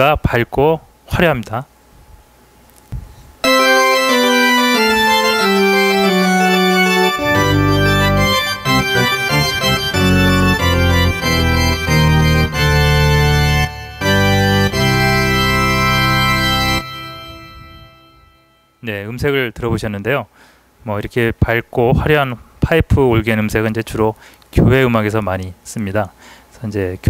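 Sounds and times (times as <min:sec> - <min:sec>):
synthesizer pipe organ: 0:03.4 - 0:19.6.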